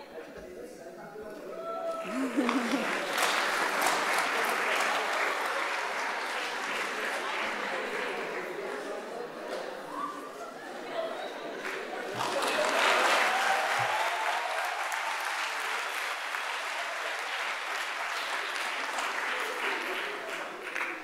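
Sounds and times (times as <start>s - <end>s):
audience applauding in a hall: 2.0s - 9.4s, 11.6s - 21.0s.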